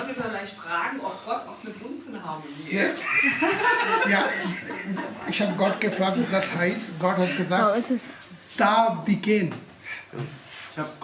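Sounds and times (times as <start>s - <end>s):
person speaking: 4.0s - 9.6s.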